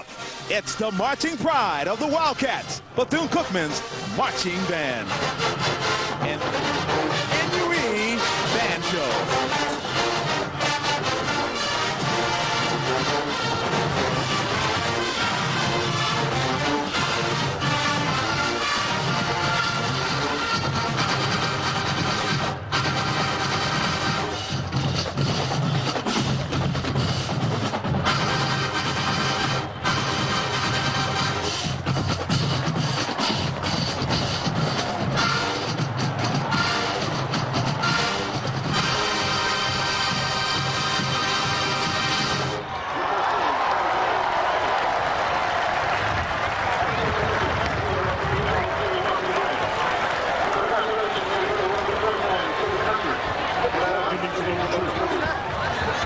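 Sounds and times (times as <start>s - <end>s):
marching band playing: 0.0s - 42.8s
drums keeping steady beat: 11.9s - 42.6s.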